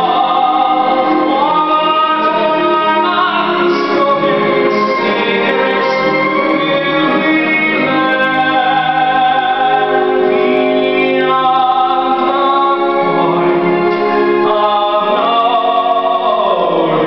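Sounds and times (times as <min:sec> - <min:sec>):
man singing: 0:00.0 - 0:17.0
orchestral backing track: 0:00.0 - 0:17.0.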